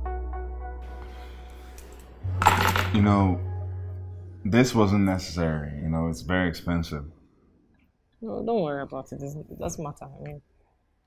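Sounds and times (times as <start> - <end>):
soft ambient music: 0.0 - 6.2.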